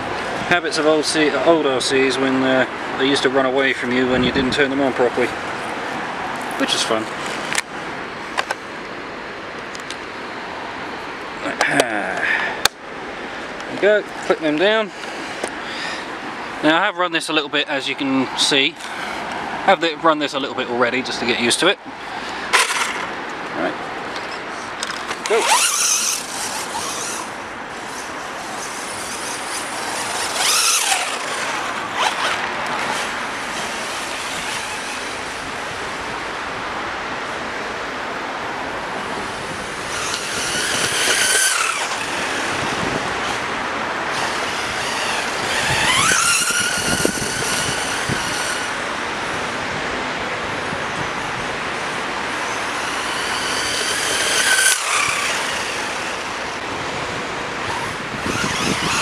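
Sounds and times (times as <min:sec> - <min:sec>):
rc car motor whine: 0:18.8 - 0:19.4, 0:22.0 - 0:23.7, 0:24.6 - 0:36.5, 0:38.8 - 0:49.6, 0:50.6 - 0:56.7, 0:57.6 - 0:59.0.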